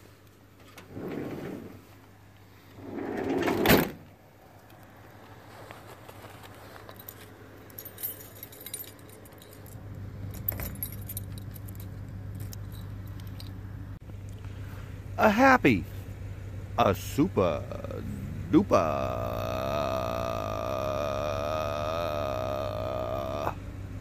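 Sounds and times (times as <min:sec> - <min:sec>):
door slamming shut: 0:03.0 - 0:04.1
keys jangling: 0:06.6 - 0:13.6.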